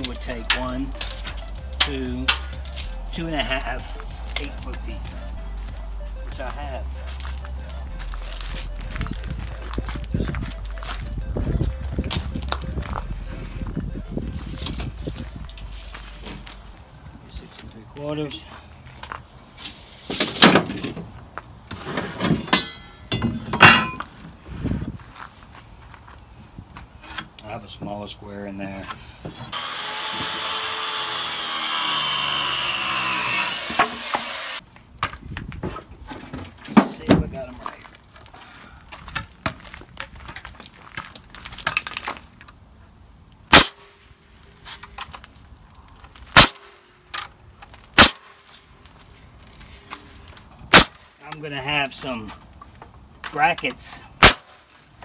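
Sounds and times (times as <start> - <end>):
boards being handled: 18.9 - 24.4, 33.4 - 42.6
nail gun shots: 43.5 - 43.9, 46.4 - 46.8, 48.0 - 48.3, 50.7 - 51.0, 54.2 - 54.6.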